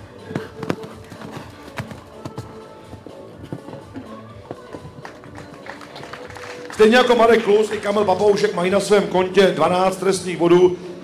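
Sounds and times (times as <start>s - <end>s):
horse hoofbeats on sand: 0.0s - 5.7s
background music: 0.0s - 11.0s.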